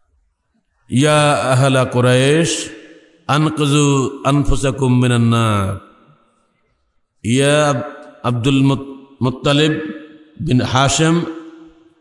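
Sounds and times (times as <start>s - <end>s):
man chanting through microphone: 0.9s - 5.8s, 7.3s - 11.5s.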